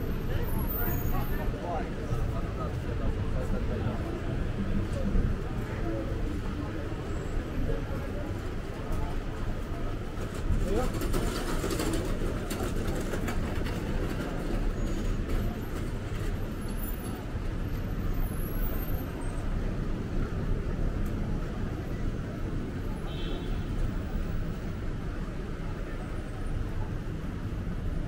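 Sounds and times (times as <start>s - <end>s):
chatter of passers-by: 0.0s - 28.0s
low traffic rumble: 0.0s - 28.0s.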